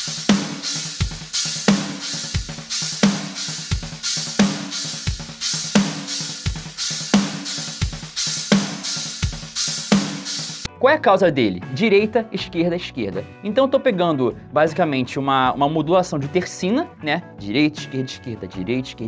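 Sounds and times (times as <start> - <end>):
drum kit playing: 0.0 - 10.7
loud cymbal accent: 0.0 - 10.7.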